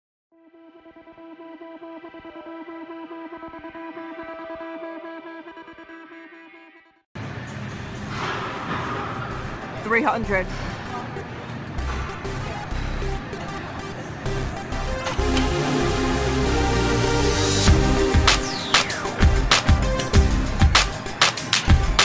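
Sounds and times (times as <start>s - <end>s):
noisy gym background: 7.2s - 22.0s.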